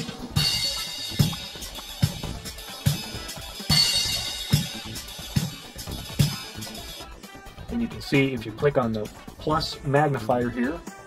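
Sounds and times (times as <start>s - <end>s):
cymbals and hi-hat: 0.0s - 11.0s.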